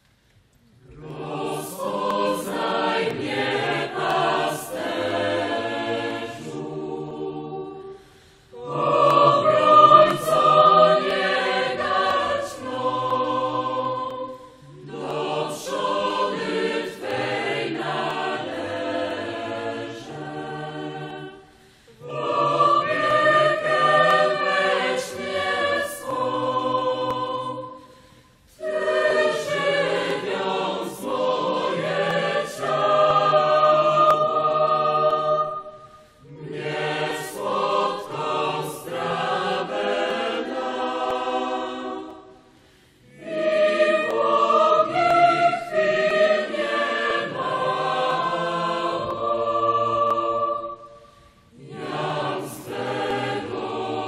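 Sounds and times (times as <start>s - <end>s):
choir singing a hymn: 0.7s - 54.0s.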